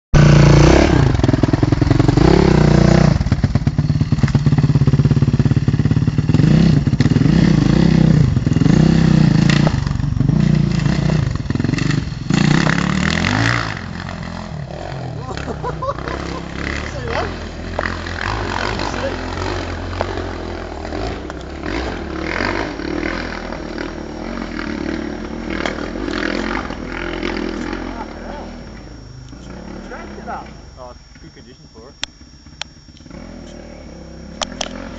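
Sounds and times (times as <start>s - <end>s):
dirt bike engine revving: 0.1s - 34.9s.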